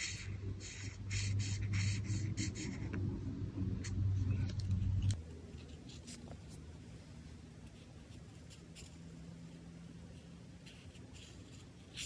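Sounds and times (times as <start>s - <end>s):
marker scratching on paper: 0.0s - 3.0s, 7.6s - 12.0s
low steady hum: 0.0s - 12.0s.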